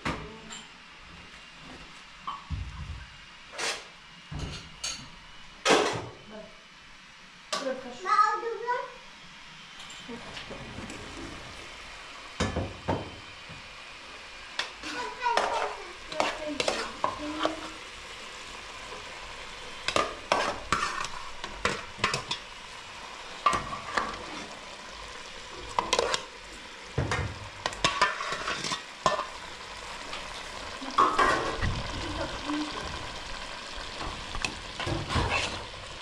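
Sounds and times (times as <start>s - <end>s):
food sizzling in a pan: 0.0s - 36.0s.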